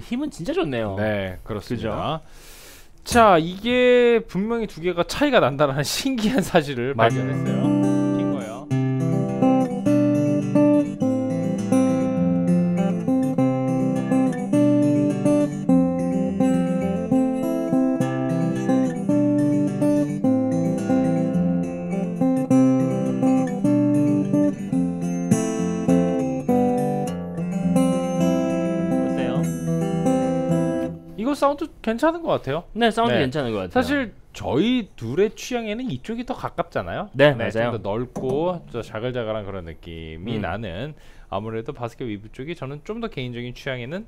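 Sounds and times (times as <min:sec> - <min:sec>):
acoustic guitar strummed chords: 0:07.0 - 0:31.2.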